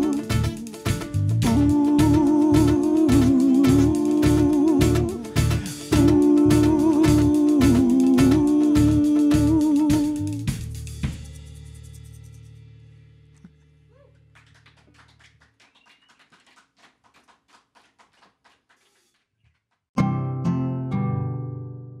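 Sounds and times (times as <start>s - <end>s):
drum hits: 0.0s - 11.4s.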